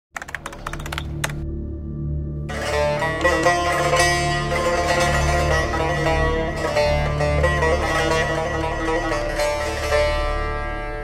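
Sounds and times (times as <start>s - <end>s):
rapid typing clicks: 0.1s - 1.4s.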